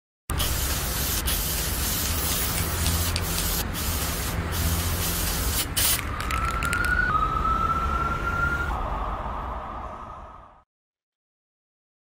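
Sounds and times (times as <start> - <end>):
spray paint can hissing: 0.3 - 7.1
thin rising tone: 5.9 - 10.6.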